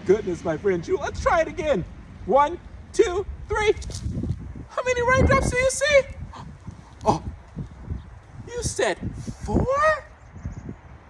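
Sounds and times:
low outdoor background noise: 0:00.0 - 0:11.0
man exclaiming: 0:04.7 - 0:07.4, 0:08.5 - 0:10.1.

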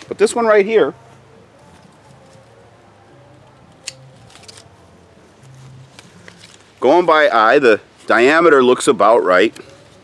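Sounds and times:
pruning shears snipping: 0:03.7 - 0:04.7.

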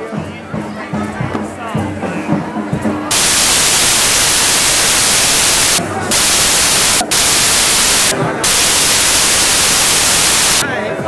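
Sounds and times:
loud static hiss: 0:03.1 - 0:10.6.

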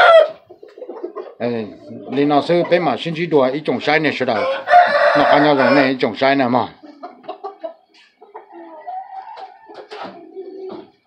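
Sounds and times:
chicken clucking: 0:00.0 - 0:11.0.

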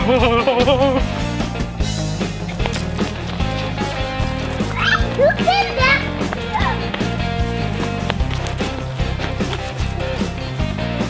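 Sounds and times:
music with steady beat: 0:00.0 - 0:11.0
child squealing and laughing: 0:04.7 - 0:06.8.

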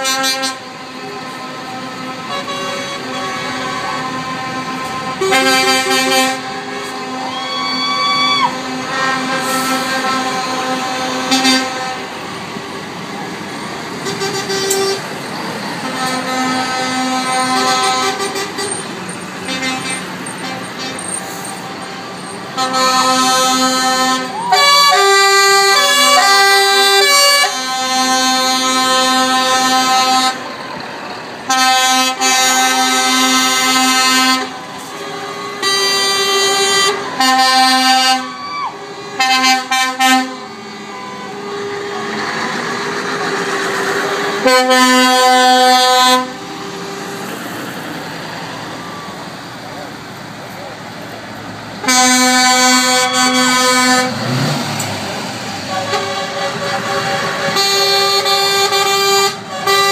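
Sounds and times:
lorry air horn blasts: 0:00.0 - 0:12.2, 0:14.0 - 0:15.1, 0:15.8 - 0:18.8, 0:19.5 - 0:30.4, 0:31.5 - 0:42.6, 0:44.3 - 0:47.2, 0:51.8 - 0:54.6, 0:55.7 - 0:59.9.

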